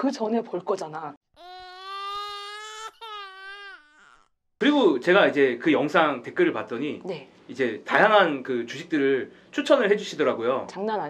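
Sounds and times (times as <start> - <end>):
cartoon crying wail: 1.4 - 4.3.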